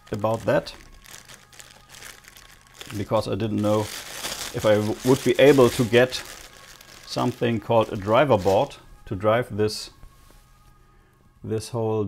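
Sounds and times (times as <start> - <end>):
plastic bag crinkling: 0.0 - 8.8.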